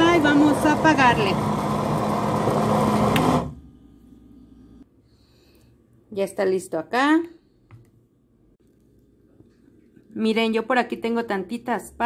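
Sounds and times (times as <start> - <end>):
blender motor running: 0.0 - 3.6.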